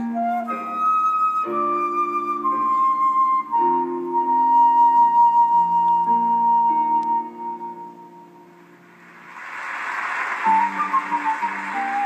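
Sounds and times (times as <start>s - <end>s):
concert flute: 0.0s - 8.8s, 10.4s - 12.0s
piano chords: 0.0s - 12.0s
rising wash of noise: 8.5s - 12.0s.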